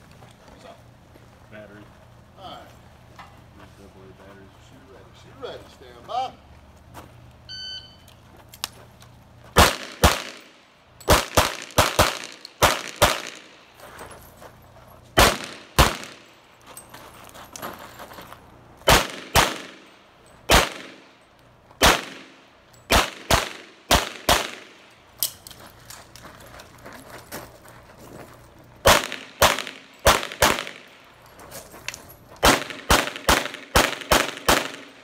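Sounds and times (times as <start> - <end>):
electronic shot timer beep: 7.5 - 8.1
pistol shots with echo: 9.6 - 13.5, 15.2 - 16.2, 18.9 - 19.8, 20.5 - 21.1, 21.8 - 24.8, 28.8 - 30.9, 32.4 - 35.0.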